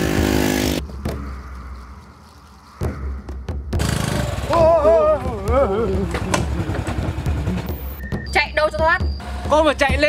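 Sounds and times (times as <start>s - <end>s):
small motorbike engine running: 3.8s - 7.7s.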